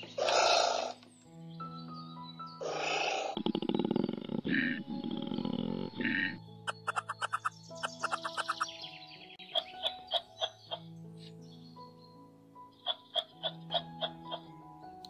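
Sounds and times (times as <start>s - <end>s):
wild animal calls: 0.0s - 1.0s, 2.6s - 8.6s
background music: 0.0s - 15.0s.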